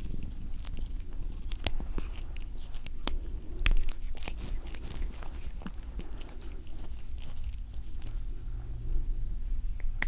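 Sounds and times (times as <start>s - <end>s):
cat licking: 0.0s - 8.4s
low rumble: 0.0s - 10.0s.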